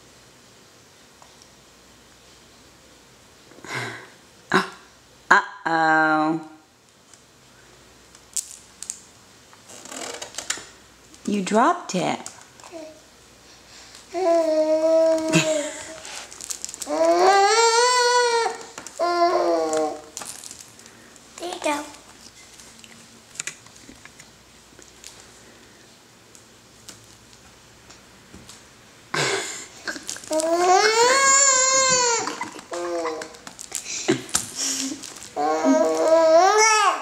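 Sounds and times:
soft rustling: 15.1 - 17.3.

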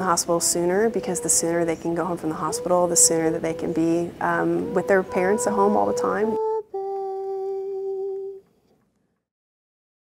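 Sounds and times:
woman humming a held note: 0.4 - 8.4.

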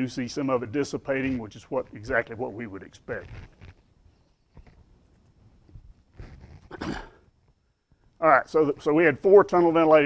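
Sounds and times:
man clearing his throat: 6.7 - 7.2.

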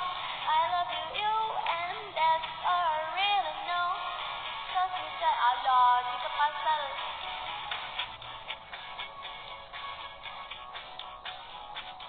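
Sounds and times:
woman singing: 0.0 - 7.1
karaoke backing track: 0.0 - 12.0.

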